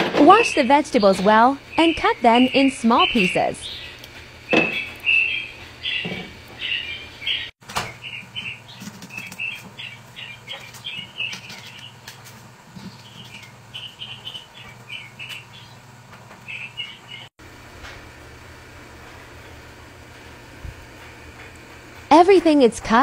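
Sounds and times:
steady low hum: 0:00.0 - 0:23.0
small birds chirping: 0:00.4 - 0:17.3.

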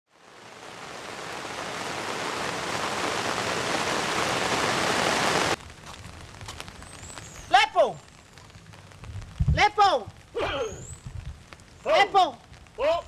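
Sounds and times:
waterfall rushing: 0:00.1 - 0:05.6.

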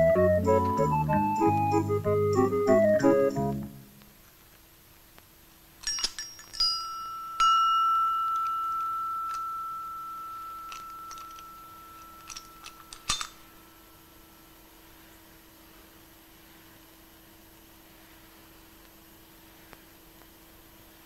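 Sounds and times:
bell-like metallic ring: 0:05.9 - 0:13.3
padlock mechanism clicks: 0:10.7 - 0:13.4.

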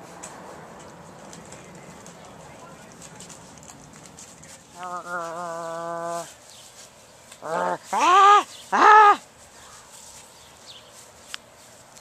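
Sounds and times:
puppy rustling on grass: 0:00.0 - 0:12.0.

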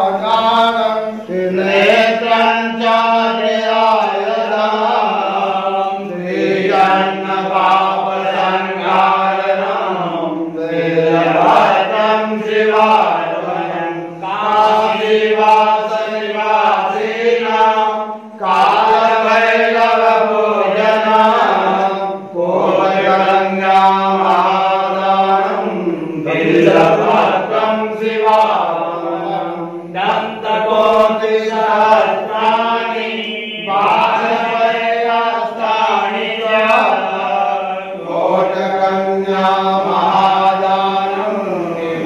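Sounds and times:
men chanting: 0:00.0 - 0:42.0.

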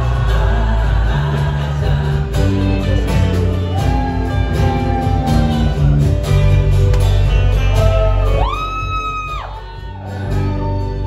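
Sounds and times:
live band with guitars: 0:00.0 - 0:11.0.

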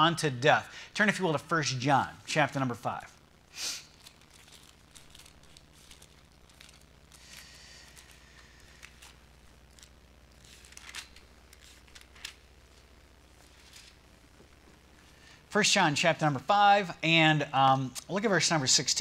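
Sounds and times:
low room hum: 0:00.0 - 0:19.0
pages being turned: 0:03.8 - 0:14.5.

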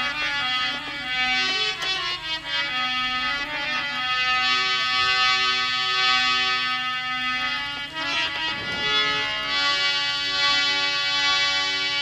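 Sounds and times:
harmonium playing chords: 0:00.0 - 0:12.0.

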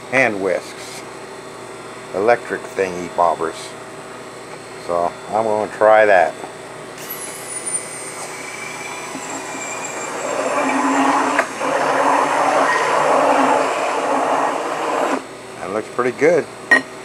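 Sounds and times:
immersion blender whisking eggs: 0:07.0 - 0:15.2.

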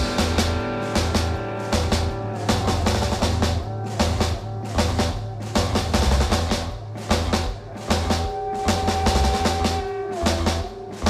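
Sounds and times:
drum kit playing a beat: 0:00.0 - 0:11.0
live rock band: 0:00.0 - 0:11.0.

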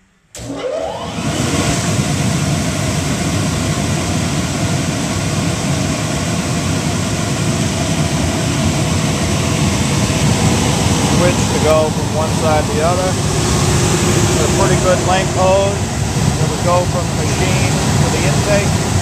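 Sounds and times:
electric blower rushing air: 0:00.4 - 0:19.0
low motor hum: 0:00.4 - 0:19.0.

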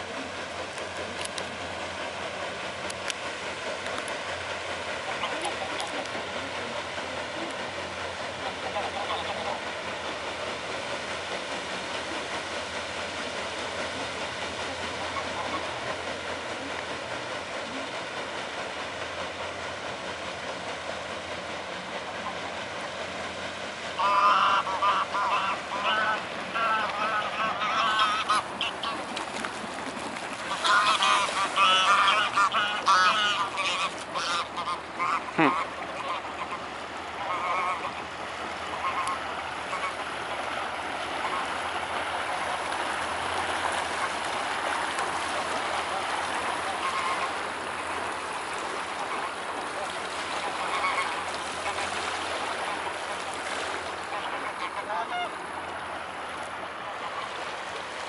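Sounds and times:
geese honking: 0:05.0 - 0:07.5, 0:08.3 - 0:09.7, 0:14.0 - 0:16.7, 0:23.9 - 0:29.4, 0:30.3 - 0:55.8, 0:56.9 - 0:57.5.

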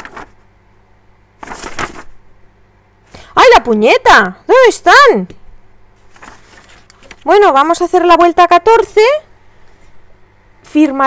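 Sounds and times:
paper sheets rustling: 0:00.0 - 0:00.4, 0:01.4 - 0:02.2, 0:06.0 - 0:07.4.

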